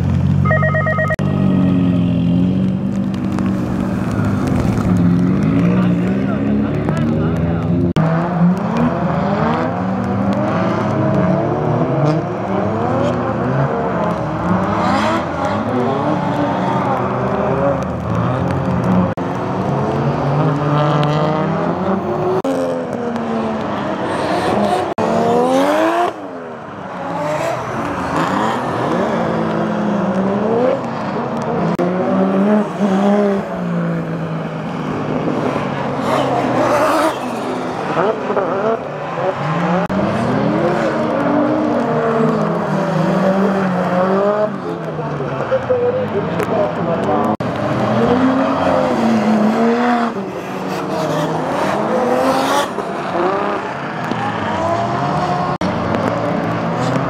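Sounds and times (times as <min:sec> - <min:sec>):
car engines revving: 0:00.0 - 0:57.0
beeping tone: 0:00.4 - 0:02.3.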